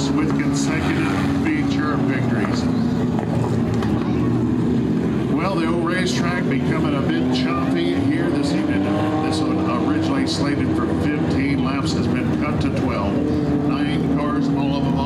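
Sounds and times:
race car engines droning: 0:00.0 - 0:15.0.

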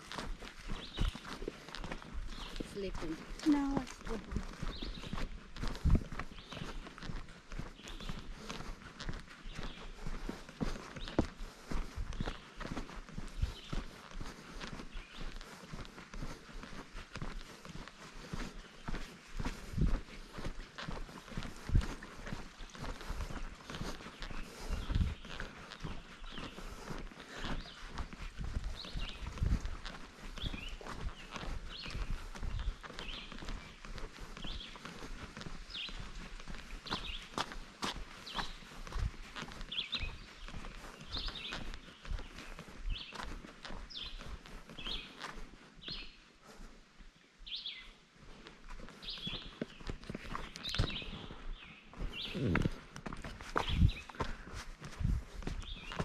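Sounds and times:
boots on dirt trail: 0:00.0 - 0:56.0.

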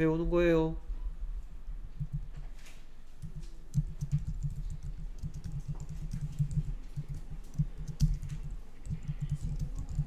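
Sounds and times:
typing on computer keyboard: 0:02.0 - 0:02.4, 0:03.2 - 0:10.0.

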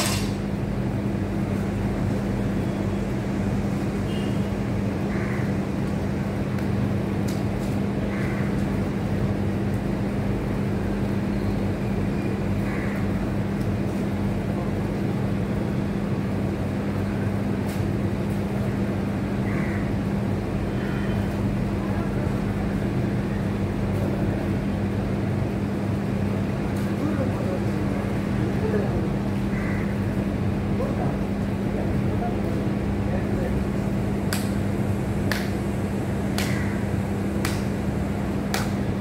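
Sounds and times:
steady machine hum: 0:00.0 - 0:39.0.

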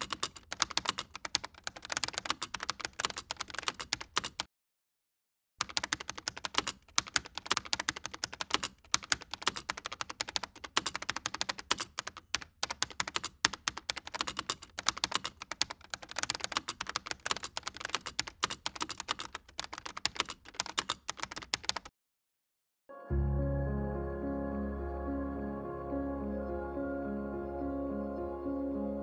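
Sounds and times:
computer keyboard typing: 0:00.0 - 0:04.5, 0:05.6 - 0:21.9.

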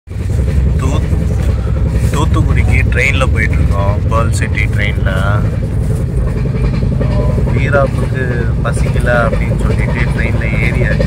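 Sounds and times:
train rumbling inside coach: 0:00.1 - 0:11.0.

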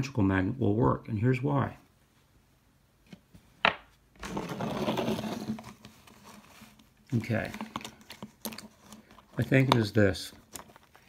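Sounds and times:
scraping and rustling: 0:04.2 - 0:11.0.

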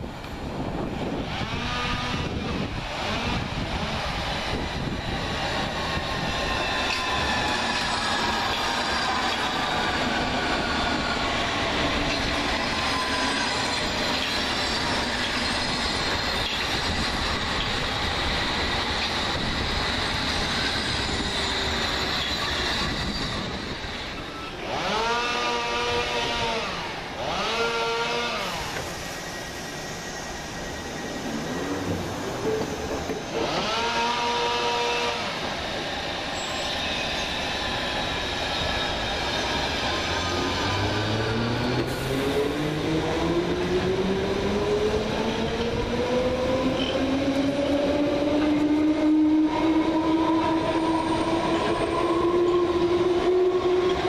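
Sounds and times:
quiet rail background: 0:00.0 - 0:54.0
train pulling away: 0:01.0 - 0:54.0.

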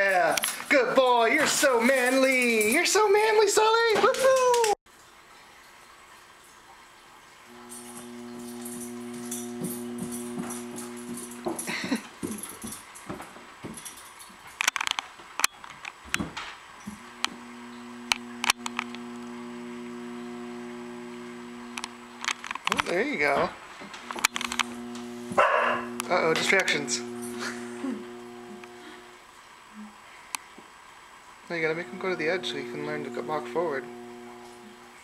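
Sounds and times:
treadmill motor humming: 0:07.5 - 0:13.9, 0:16.9 - 0:29.2, 0:31.5 - 0:35.0
sharp clicks: 0:17.2 - 0:19.3.

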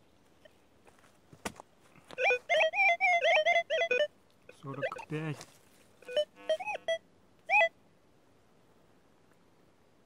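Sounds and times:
metal detector beep: 0:02.2 - 0:05.3, 0:06.0 - 0:07.7.

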